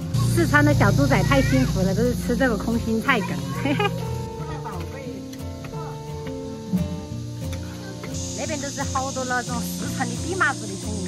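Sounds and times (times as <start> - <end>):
background music with sustained notes: 0.0 - 11.0.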